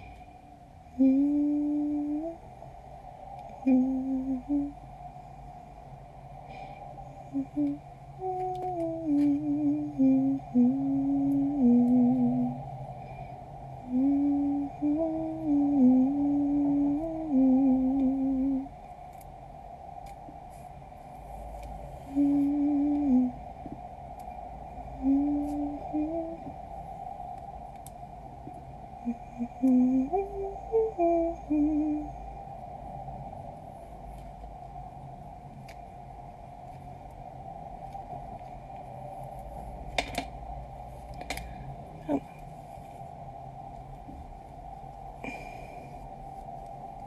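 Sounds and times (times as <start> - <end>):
person humming a slow tune: 0.8 - 4.9, 7.0 - 18.8, 21.8 - 27.0, 28.8 - 32.5, 42.0 - 42.6.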